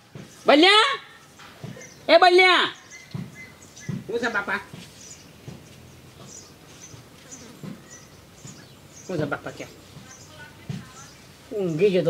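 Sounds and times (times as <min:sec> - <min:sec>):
high bird chirps: 0:01.1 - 0:12.0.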